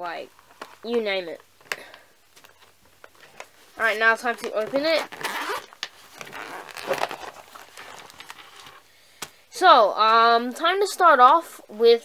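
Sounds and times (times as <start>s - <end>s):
zipper pulled open: 4.4s - 8.8s.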